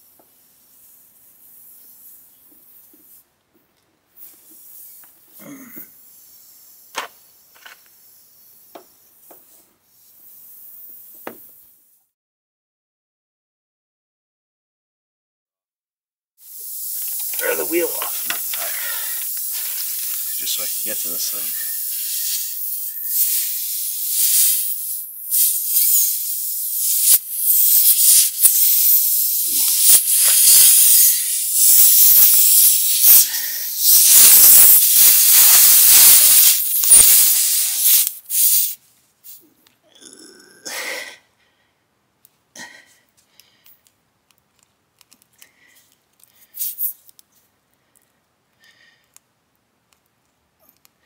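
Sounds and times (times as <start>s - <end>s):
air hissing from tire: 0.0s - 3.2s, 4.2s - 11.9s, 16.4s - 39.4s, 46.4s - 47.0s.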